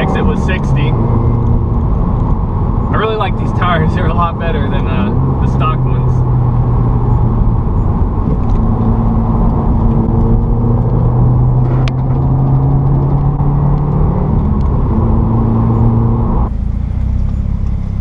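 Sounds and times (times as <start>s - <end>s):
car engine and exhaust cruising: 0.0s - 18.0s
road and tyre noise: 0.0s - 18.0s.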